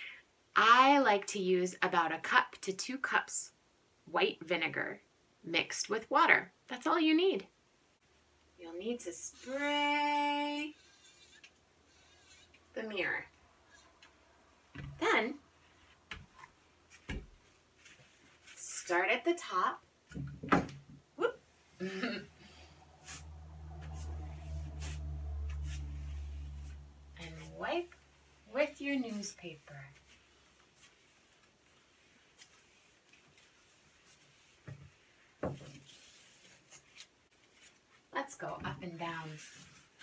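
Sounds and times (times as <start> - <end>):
newspaper wiping a glass mirror: 15.1 - 19.0, 22.9 - 38.1.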